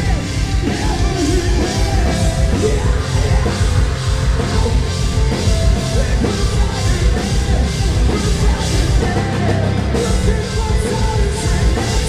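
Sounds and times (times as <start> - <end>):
drum kit with kick drum: 0.0 - 12.0
electric guitars: 0.0 - 12.0.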